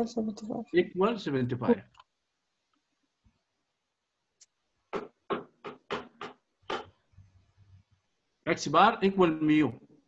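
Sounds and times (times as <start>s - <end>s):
man speaking: 0.7s - 1.9s, 8.5s - 9.8s.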